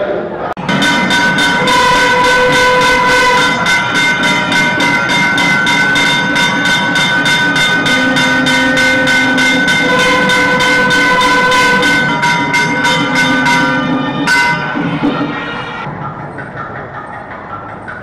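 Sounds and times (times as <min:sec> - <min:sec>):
rapid regular bell strikes: 0:00.6 - 0:18.0.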